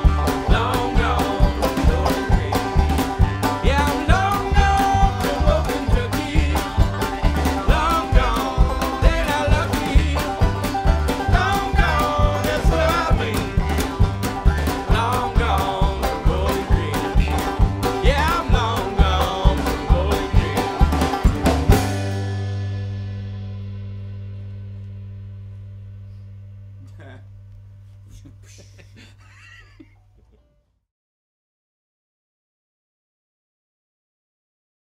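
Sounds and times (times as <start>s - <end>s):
man singing: 0.0s - 21.2s
harmonica: 0.0s - 22.5s
fiddle: 0.0s - 22.6s
banjo: 0.0s - 26.1s
upright bass: 0.0s - 29.9s.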